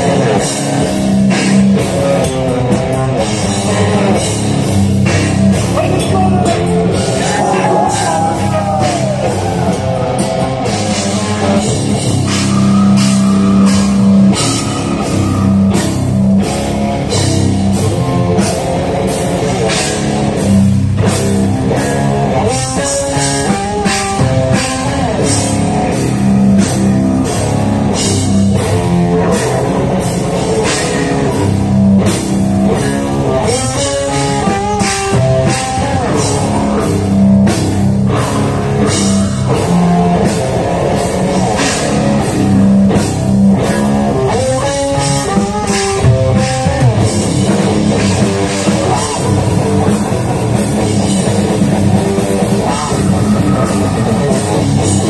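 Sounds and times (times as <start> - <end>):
death metal band playing live: 0.0 - 55.0.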